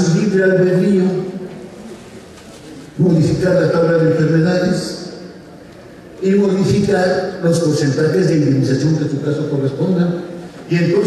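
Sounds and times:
man speaking in a hall: 0:00.0 - 0:11.0.

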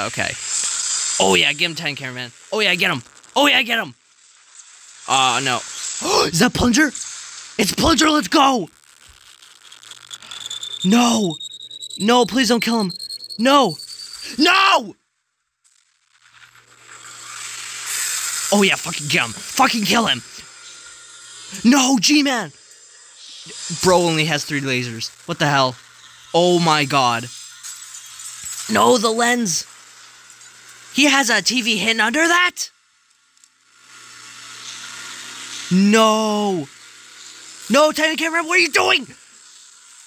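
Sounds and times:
hissing rush: 0:04.8 - 0:08.7, 0:16.9 - 0:20.4, 0:21.2 - 0:29.7.

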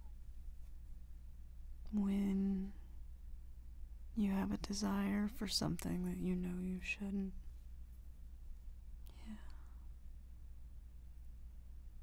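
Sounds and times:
steady low hum: 0:00.0 - 0:12.0
woman whispering breathily: 0:09.1 - 0:09.8.

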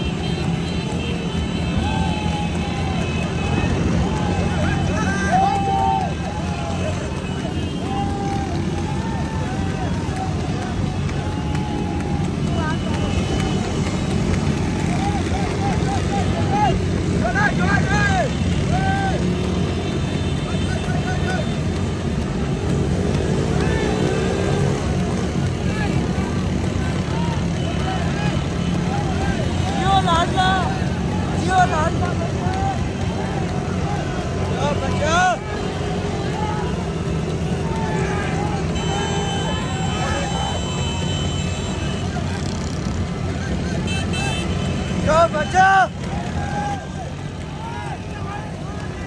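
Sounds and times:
motorcycle engines running: 0:00.0 - 0:49.0
people shouting: 0:00.0 - 0:49.0
motorcycle engine revving: 0:21.6 - 0:31.1.

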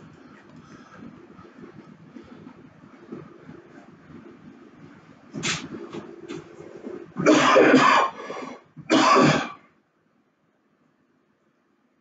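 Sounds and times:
person clearing throat: 0:07.2 - 0:08.2, 0:08.9 - 0:09.6.

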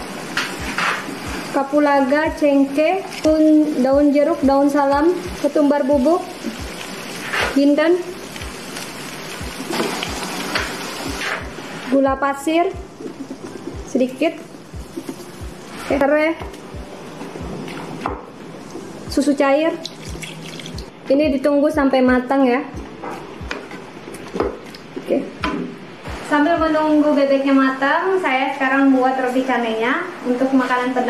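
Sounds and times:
sauce sizzling and bubbling in a pan: 0:00.0 - 0:21.0
soft low music beat: 0:00.5 - 0:02.5, 0:03.3 - 0:07.0, 0:08.3 - 0:08.7, 0:09.4 - 0:27.0.

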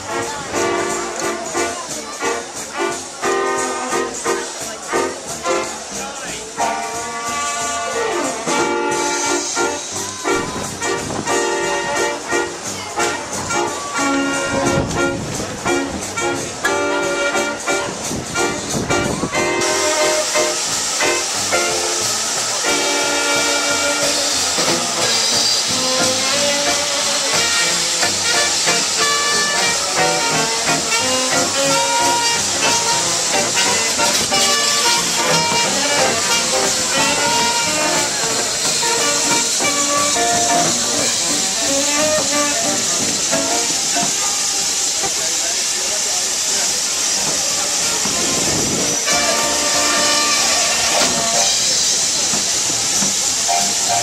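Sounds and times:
steam locomotive hissing: 0:00.0 - 0:54.0
music of short notes: 0:00.1 - 0:44.2, 0:49.0 - 0:52.1.

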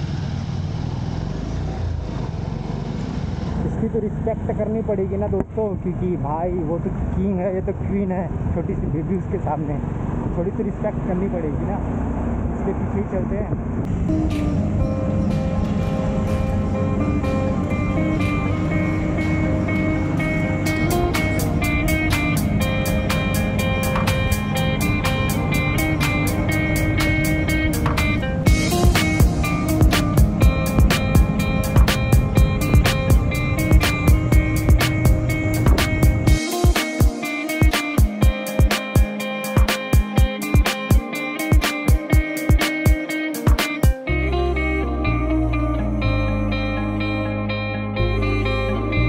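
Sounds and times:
motorcycle engine running: 0:00.0 - 0:05.6, 0:13.9 - 0:42.3
melody of held notes: 0:13.9 - 0:49.0
quick regular beat: 0:27.8 - 0:44.0.

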